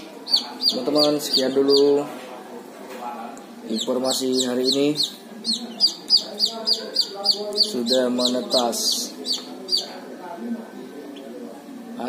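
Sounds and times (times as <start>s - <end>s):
chicks peeping: 0.0s - 2.1s, 3.6s - 10.2s.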